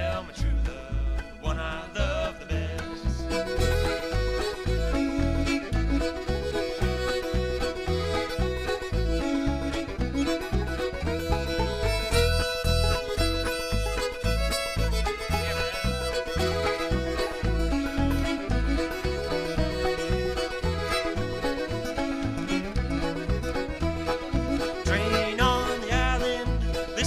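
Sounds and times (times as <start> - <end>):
clawhammer banjo: 0.0 - 27.0
fiddle tune: 0.0 - 27.0
upright bass plucking: 0.0 - 27.0
button accordion: 3.2 - 27.0.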